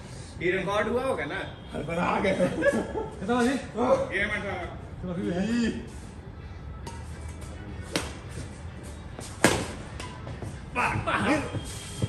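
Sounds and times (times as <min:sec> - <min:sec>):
racket hitting shuttlecock: 0:09.4 - 0:10.2.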